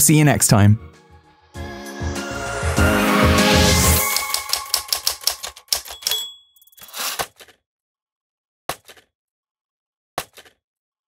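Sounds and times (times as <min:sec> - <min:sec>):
theme music: 0:00.0 - 0:05.6.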